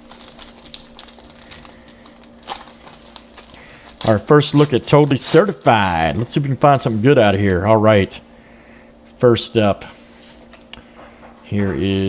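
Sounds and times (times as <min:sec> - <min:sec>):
foil wrapper crinkling: 0:00.0 - 0:07.6.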